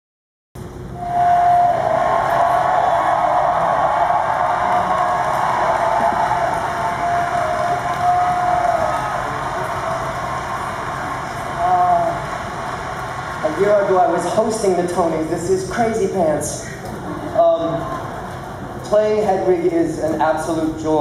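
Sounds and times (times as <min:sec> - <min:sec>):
audience applauding: 0:01.1 - 0:15.3.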